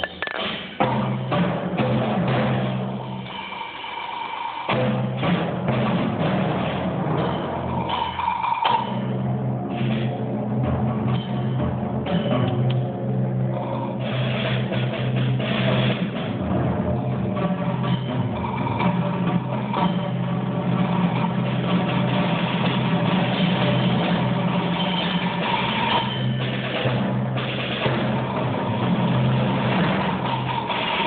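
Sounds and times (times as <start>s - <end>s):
rattle of drums: 0.0s - 1.8s, 17.4s - 31.0s
timpani roll: 4.7s - 8.1s, 8.7s - 31.0s.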